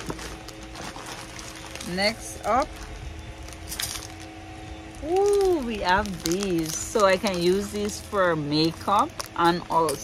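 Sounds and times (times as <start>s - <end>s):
low background hum: 0.0s - 10.0s
plastic packaging rustling: 0.0s - 10.0s.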